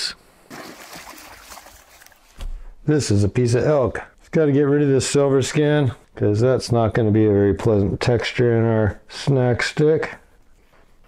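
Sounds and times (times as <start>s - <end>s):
water splashing: 0.0s - 2.4s.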